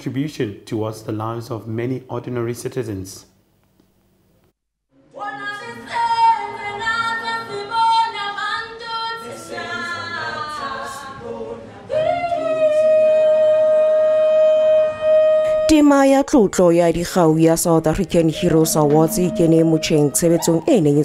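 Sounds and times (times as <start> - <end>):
woman singing a cappella: 5.1 - 14.0, 17.7 - 21.0.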